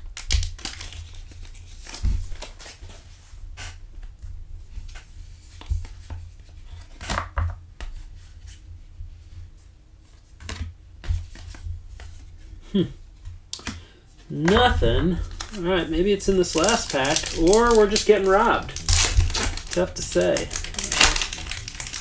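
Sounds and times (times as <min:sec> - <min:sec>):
low steady hum: 0:00.0 - 0:22.0
paper wrapper rustling: 0:00.1 - 0:03.0, 0:14.3 - 0:22.0
trading cards being flipped: 0:13.6 - 0:22.0.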